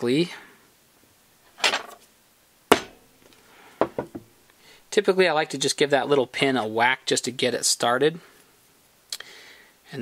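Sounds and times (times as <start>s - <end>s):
small hammer striking metal pin: 2.7s - 3.0s.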